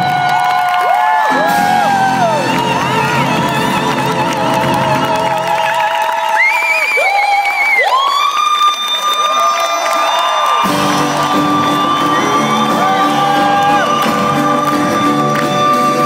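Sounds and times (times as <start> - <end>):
band playing: 0.0 - 5.6, 10.6 - 16.0.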